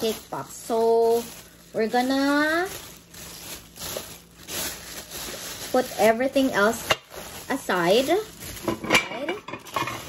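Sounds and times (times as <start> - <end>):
plastic wrapping rustling: 0.0 - 10.0
metal plates clinking together: 8.6 - 10.0.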